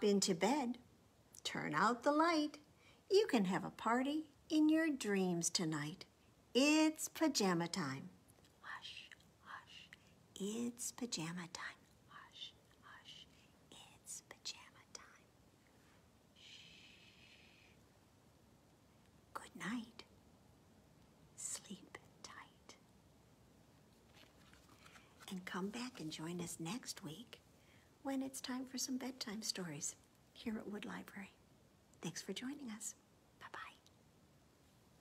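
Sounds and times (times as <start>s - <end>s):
woman whispering: 8.6s - 15.3s, 16.4s - 17.7s, 19.3s - 20.1s, 21.4s - 22.8s, 25.2s - 27.4s, 28.0s - 31.4s, 32.0s - 34.0s.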